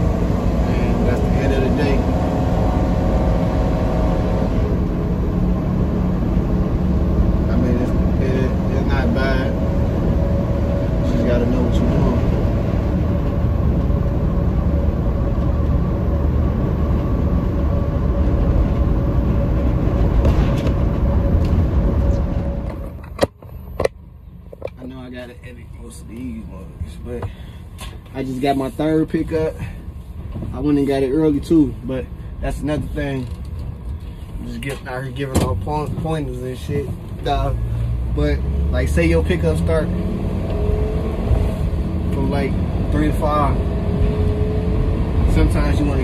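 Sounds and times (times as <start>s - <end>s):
truck engine and road rumble: 0.0s - 46.0s.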